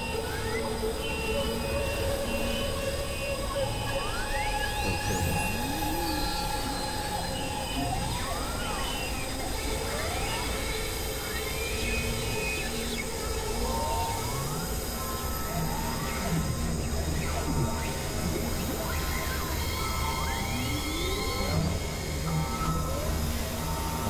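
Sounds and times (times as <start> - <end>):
held electronic drones: 0.0 - 24.0.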